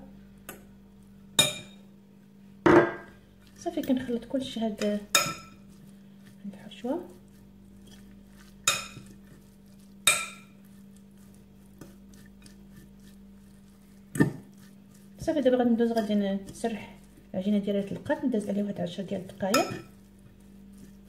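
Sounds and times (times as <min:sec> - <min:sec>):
metal fork clinking on glass bowl: 0:19.5 - 0:19.9.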